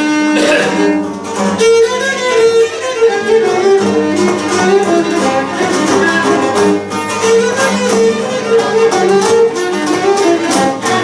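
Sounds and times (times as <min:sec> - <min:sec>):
fast bowed fiddle melody: 0:00.0 - 0:11.0
strummed plucked strings: 0:00.0 - 0:11.0.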